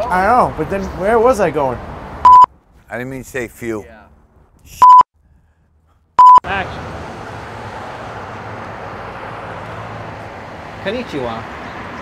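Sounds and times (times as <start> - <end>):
outdoor background noise: 0.0 - 12.0
electronic beep: 2.3 - 2.5, 4.8 - 5.1, 6.2 - 6.4.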